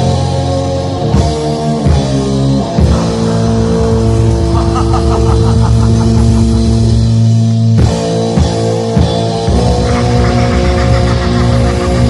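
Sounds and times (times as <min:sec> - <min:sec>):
bass guitar: 0:00.0 - 0:12.0
distorted electric guitar chords: 0:00.0 - 0:12.0
drums: 0:00.0 - 0:12.0.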